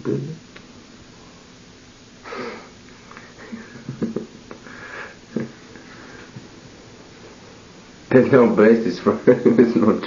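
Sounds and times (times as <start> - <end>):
person sniffing: 2.2 - 3.5.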